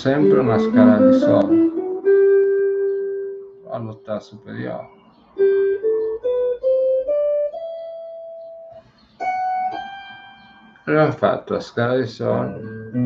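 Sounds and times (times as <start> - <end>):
electric guitar playing a scale: 0.0 - 13.0.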